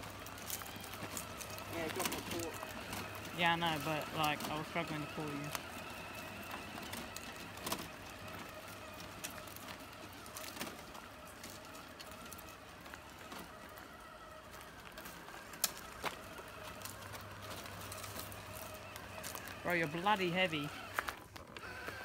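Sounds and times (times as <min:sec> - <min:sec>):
electric motors whining: 0:00.0 - 0:22.0.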